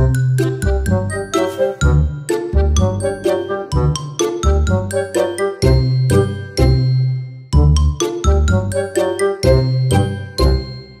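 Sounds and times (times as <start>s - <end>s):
music jingle with chiming notes: 0.0s - 11.0s.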